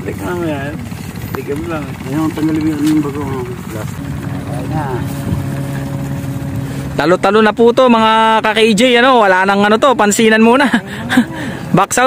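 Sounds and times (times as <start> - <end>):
soft voices talking: 0.0 - 9.0
steady engine hum: 0.0 - 12.0.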